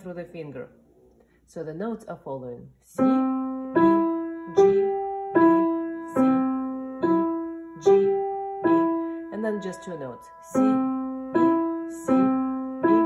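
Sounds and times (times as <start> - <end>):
upright piano single notes: 3.0 - 13.0.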